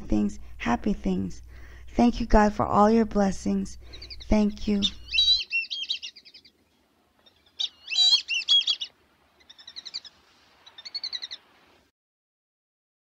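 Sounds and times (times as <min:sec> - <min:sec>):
songbird warbling: 0:03.8 - 0:11.5.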